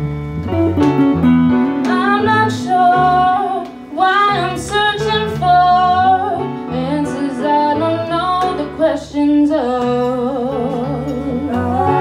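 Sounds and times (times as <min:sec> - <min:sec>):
bass guitar: 0:00.0 - 0:12.0
electric guitar: 0:00.0 - 0:12.0
woman singing: 0:01.8 - 0:12.0.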